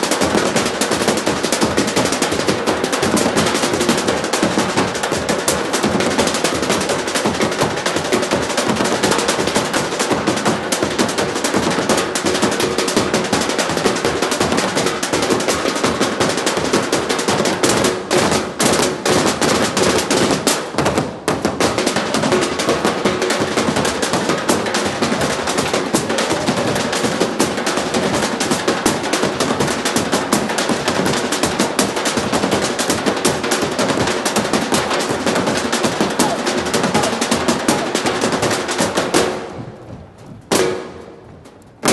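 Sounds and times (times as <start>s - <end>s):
percussion ensemble drumming: 0.0s - 39.8s, 40.4s - 41.9s.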